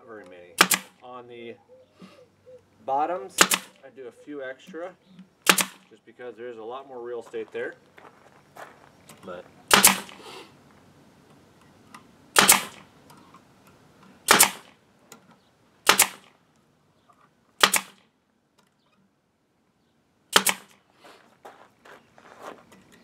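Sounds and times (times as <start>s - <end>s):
nail gun shots: 0.6s - 1.0s, 3.3s - 3.8s, 5.4s - 5.9s, 9.7s - 10.2s, 12.3s - 12.9s, 14.2s - 14.8s, 15.8s - 16.4s, 17.6s - 18.1s, 20.3s - 20.8s.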